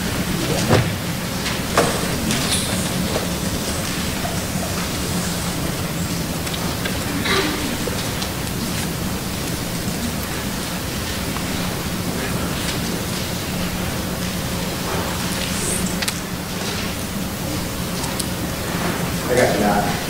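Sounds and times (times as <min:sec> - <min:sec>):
steady hiss: 0:00.0 - 0:20.0.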